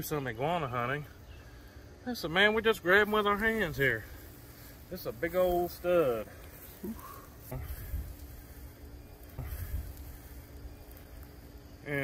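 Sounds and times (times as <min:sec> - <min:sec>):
faint steady hum: 0:00.0 - 0:12.0
wind rumble on microphone: 0:07.4 - 0:11.0.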